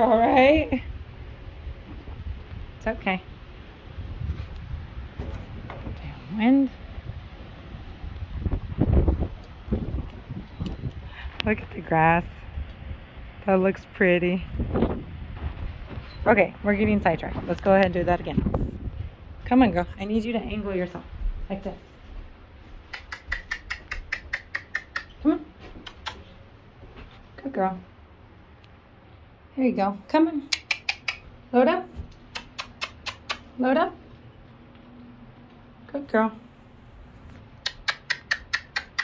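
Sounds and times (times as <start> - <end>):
wind buffeting microphone: 0.0 - 21.5
tongue clicks: 22.9 - 25.2, 25.8 - 26.4, 30.5 - 31.3, 32.1 - 33.6, 37.6 - 39.0.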